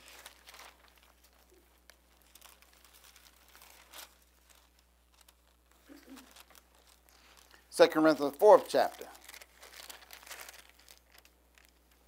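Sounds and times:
paper pages rustling: 0:00.0 - 0:12.0.

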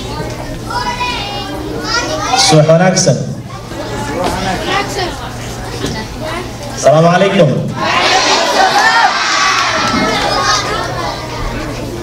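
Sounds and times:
children calling out together: 0:07.8 - 0:12.0.

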